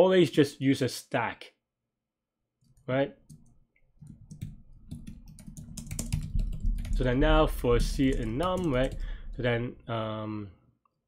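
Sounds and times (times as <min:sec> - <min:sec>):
computer keyboard typing: 0:02.7 - 0:09.4.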